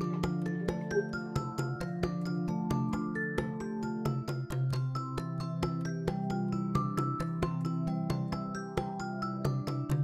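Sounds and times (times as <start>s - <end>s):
film music with struck notes: 0.0s - 6.3s.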